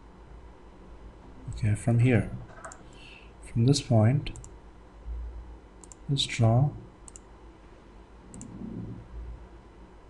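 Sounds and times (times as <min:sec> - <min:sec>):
faint low murmur: 0:00.0 - 0:10.0.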